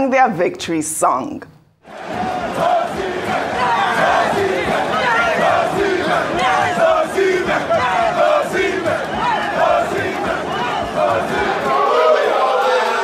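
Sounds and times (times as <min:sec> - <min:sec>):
men chanting and singing: 0:01.9 - 0:13.0.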